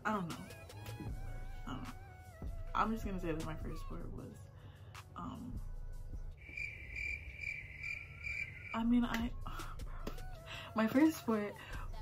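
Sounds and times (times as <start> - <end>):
cricket chirping: 6.4 - 8.8.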